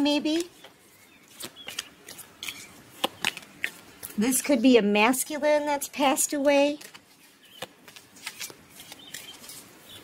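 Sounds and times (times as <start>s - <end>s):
cards rustling: 0.2s - 4.3s, 6.5s - 10.0s.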